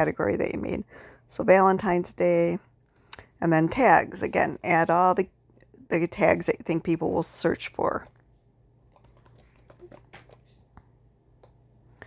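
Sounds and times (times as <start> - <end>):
typing on computer keyboard: 8.9 - 10.6.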